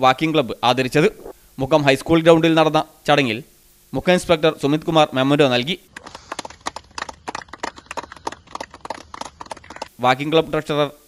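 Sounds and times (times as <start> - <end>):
people clapping: 5.9 - 9.9.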